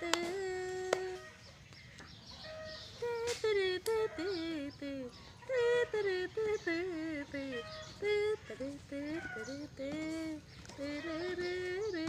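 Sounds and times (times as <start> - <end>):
high chirping calls: 0.0 - 12.0.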